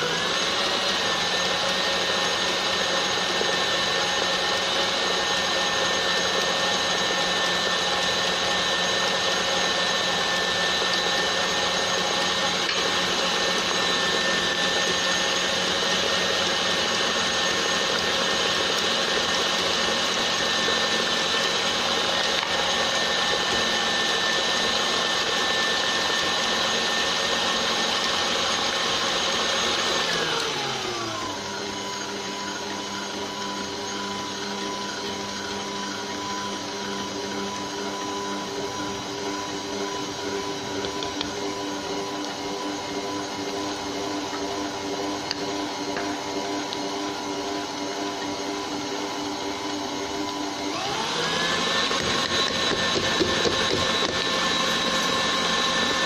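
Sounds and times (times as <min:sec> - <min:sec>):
stand mixer whining: 0:00.0 - 0:56.0.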